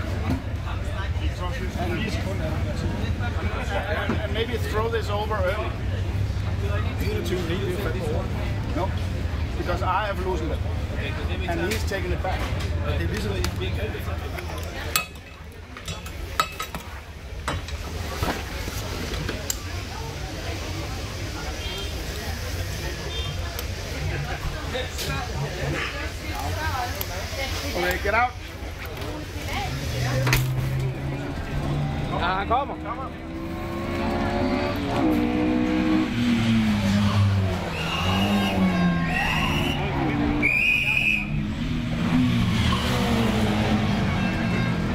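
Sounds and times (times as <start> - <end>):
brief high squeal: 37.7 - 41.3.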